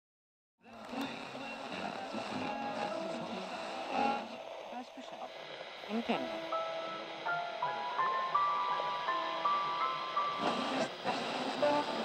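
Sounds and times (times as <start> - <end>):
music: 0.6 - 5.1, 5.8 - 12.0
indistinct speaking voices: 0.6 - 6.5
hissy background noise: 0.6 - 12.0.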